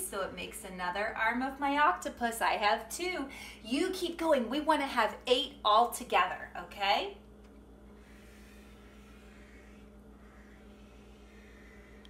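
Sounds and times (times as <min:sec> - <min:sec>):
low electrical hum: 0:00.0 - 0:12.0
marker rubbing on paper: 0:08.0 - 0:11.6.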